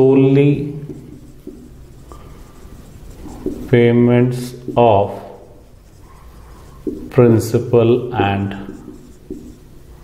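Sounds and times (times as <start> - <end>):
marker pen rubbing on whiteboard: 0.0 - 10.0.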